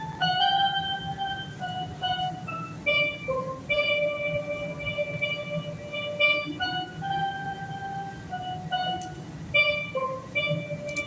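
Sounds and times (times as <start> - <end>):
steelpan melody: 0.0 - 11.0.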